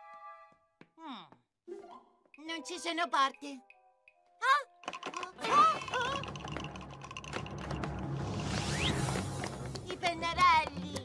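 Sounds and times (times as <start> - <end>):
background music: 0.0 - 0.8, 1.7 - 11.0.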